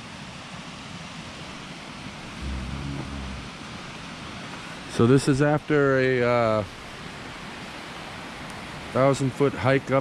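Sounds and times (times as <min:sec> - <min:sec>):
man humming low: 0:02.4 - 0:03.6.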